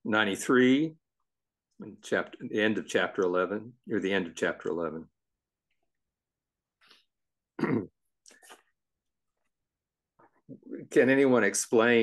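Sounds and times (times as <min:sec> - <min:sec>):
person clearing throat: 0:07.5 - 0:08.1.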